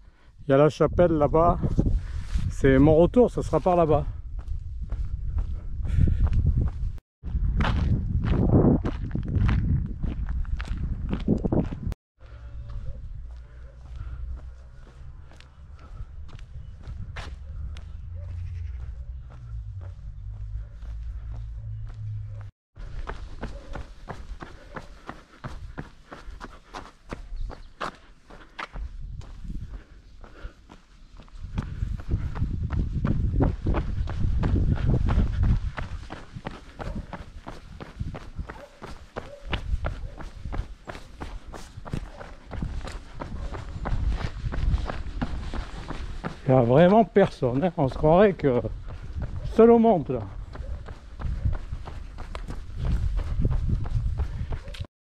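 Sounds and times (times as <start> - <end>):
wind buffeting microphone: 0.8 - 3.3, 3.9 - 12.0, 13.0 - 24.6, 28.6 - 30.4, 31.2 - 47.2, 48.2 - 54.9
footsteps on pavement: 3.2 - 54.9.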